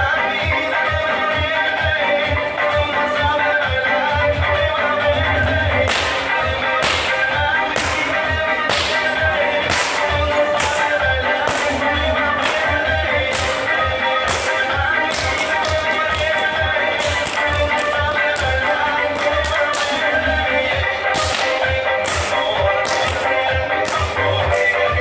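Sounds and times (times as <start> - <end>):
background music with steady beat: 0.0 - 25.0
whip cracking: 5.9 - 8.1, 8.7 - 11.8, 12.4 - 18.6, 21.1 - 24.2.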